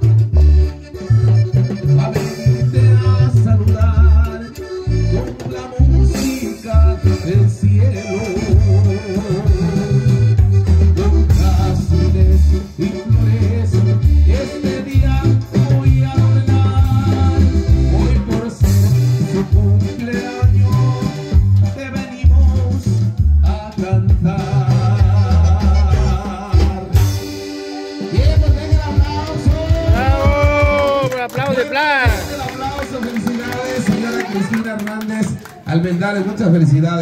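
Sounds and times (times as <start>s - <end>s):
repeating bass line: 0.0s - 34.5s
guitar: 0.0s - 37.0s
person singing: 1.8s - 31.2s.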